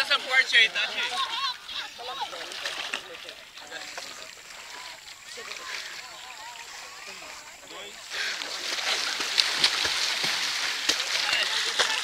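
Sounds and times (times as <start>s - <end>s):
water splashing and lapping: 0.0s - 12.0s
sharp splash: 2.1s - 7.4s, 8.0s - 12.0s.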